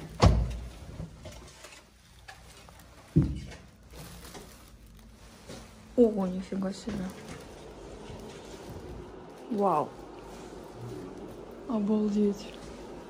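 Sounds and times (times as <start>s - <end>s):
door thump: 0.2s - 0.6s.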